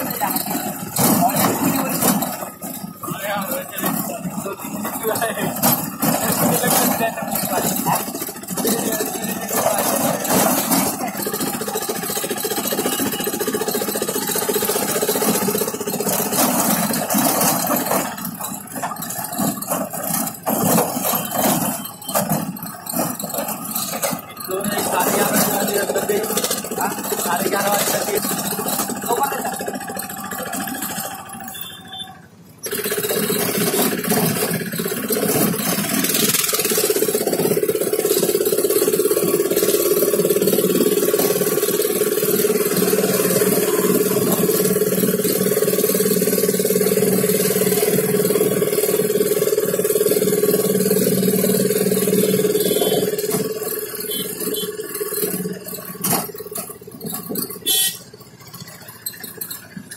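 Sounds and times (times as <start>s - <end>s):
vehicle road and engine noise: 0.0s - 59.9s.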